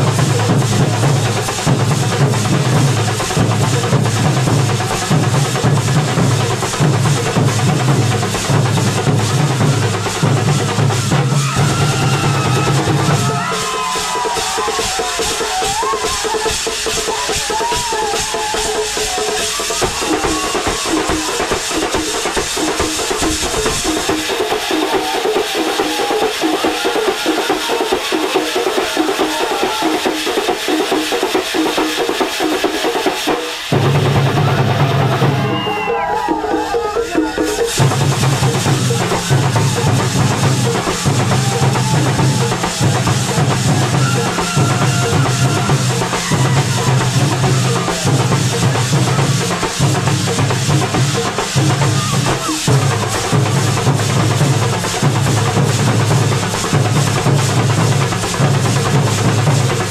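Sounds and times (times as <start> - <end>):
drums beating: 0.0 - 59.9
hand cymbals clashing: 0.0 - 59.9.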